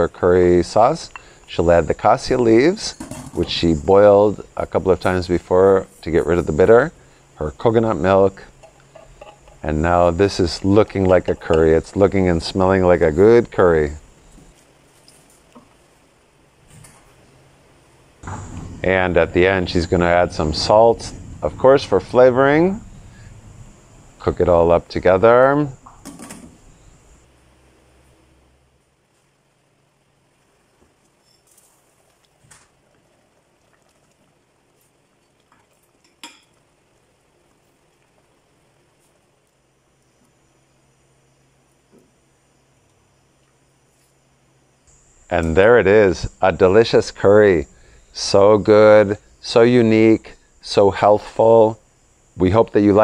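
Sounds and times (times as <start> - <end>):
spoon stirring liquid in pot: 8.5 - 9.7, 10.4 - 12.0
curry simmering in a pot: 28.8 - 44.6.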